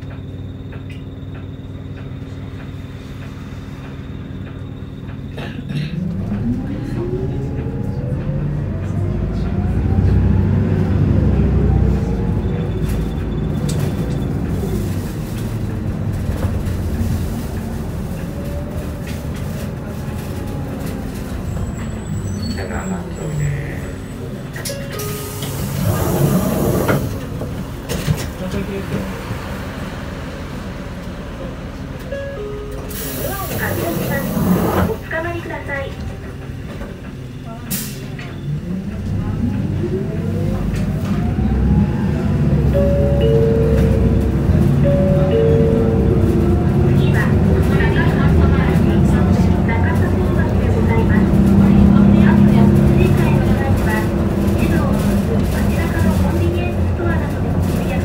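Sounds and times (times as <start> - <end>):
bus diesel engine: 0.0 - 58.0.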